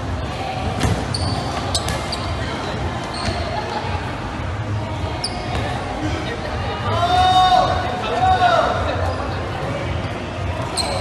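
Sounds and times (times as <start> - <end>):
crowd noise in hall: 0.0 - 11.0
balls bouncing on court: 0.6 - 4.0, 5.2 - 5.9
shoe squeaks: 0.8 - 3.9, 5.2 - 5.9, 10.6 - 11.0.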